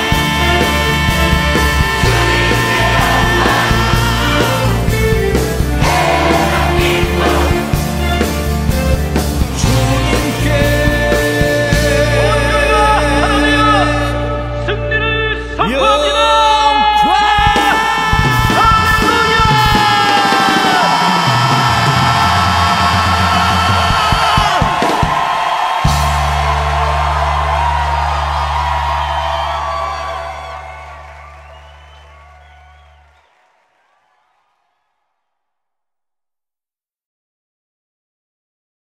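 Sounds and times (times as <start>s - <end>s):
worship song with singers and band: 0.0s - 33.1s.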